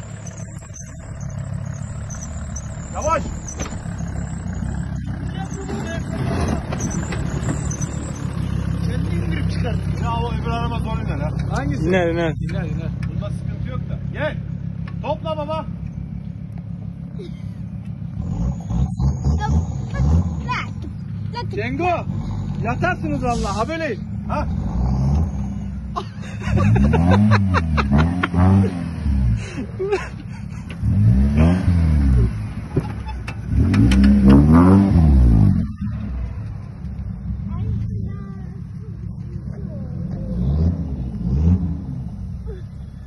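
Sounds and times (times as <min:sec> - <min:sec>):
vehicle engine running at low revs: 0:00.0 - 0:43.0.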